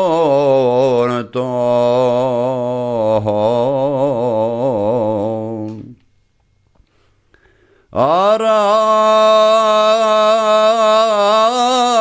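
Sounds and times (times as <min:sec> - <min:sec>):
man singing unaccompanied: 0:00.0 - 0:06.1, 0:07.9 - 0:12.0.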